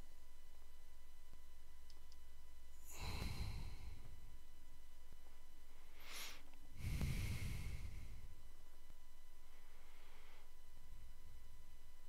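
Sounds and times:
faint electrical hum: 0:00.0 - 0:12.0
person sighing: 0:02.9 - 0:04.1.

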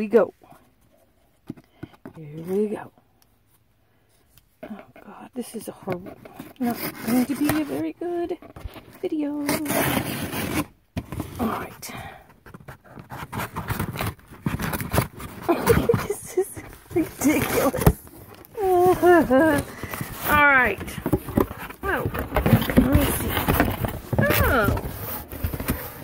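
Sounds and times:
knife scraping cardboard: 0:06.0 - 0:07.9, 0:09.4 - 0:11.8, 0:12.5 - 0:26.0.

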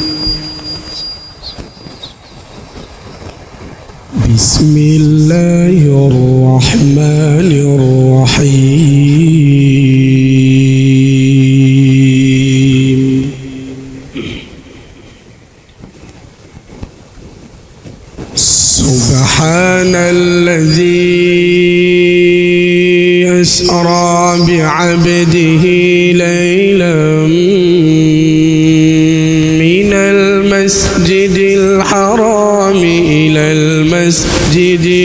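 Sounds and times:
low background noise: 0:00.0 - 0:35.0
microphone hiss and rumble: 0:00.0 - 0:35.0
amplified recitation voice: 0:04.1 - 0:15.4, 0:18.4 - 0:35.0.

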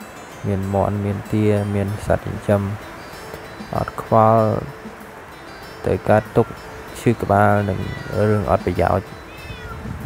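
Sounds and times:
cat meowing loudly: 0:07.5 - 0:08.5, 0:09.2 - 0:09.9.

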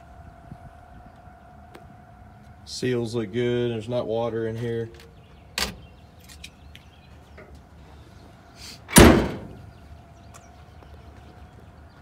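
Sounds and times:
car trunk lid slamming: 0:08.9 - 0:09.6.

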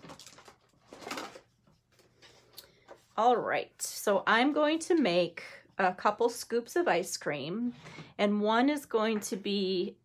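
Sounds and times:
paper rustling and scraping on table: 0:00.0 - 0:03.3.

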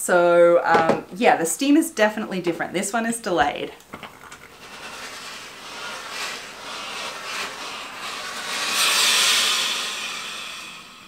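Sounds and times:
iron sliding over fabric: 0:04.2 - 0:11.0
steam hissing: 0:04.2 - 0:11.0.

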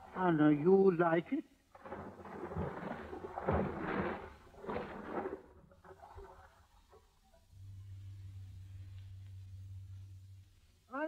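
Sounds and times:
low steady hum: 0:00.0 - 0:11.0
sea water washing: 0:01.6 - 0:10.2.

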